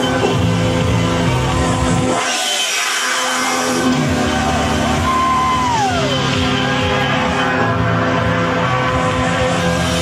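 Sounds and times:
bass: 0.0 - 10.0
electronic dance music: 0.0 - 10.0.

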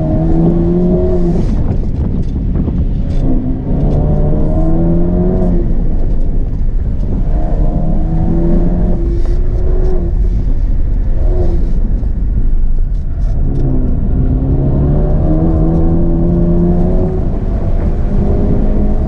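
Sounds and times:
car engine revving from inside: 0.0 - 1.7, 3.1 - 19.0
road and tyre noise: 0.0 - 19.0.

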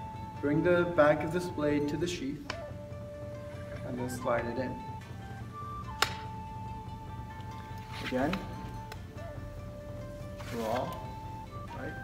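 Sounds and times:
held note of background music: 0.0 - 12.0.

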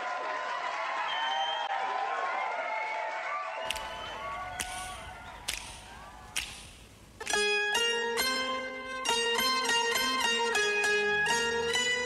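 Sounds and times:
whip-like cracks: 4.6 - 7.4.

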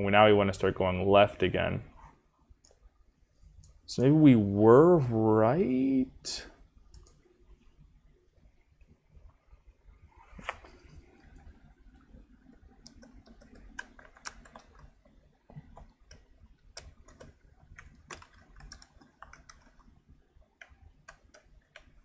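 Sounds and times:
computer keyboard keystrokes: 12.8 - 19.9.

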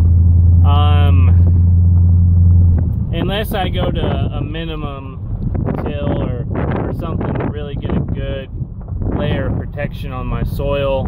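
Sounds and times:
steady low rumble: 0.0 - 11.0
man talking: 0.6 - 1.4, 3.1 - 5.2, 5.8 - 8.5, 9.2 - 11.0.

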